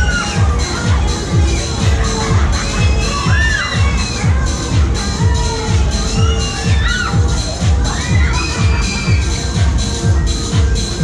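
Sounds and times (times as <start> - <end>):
loud dance music: 0.0 - 11.0
riders screaming: 6.3 - 9.6.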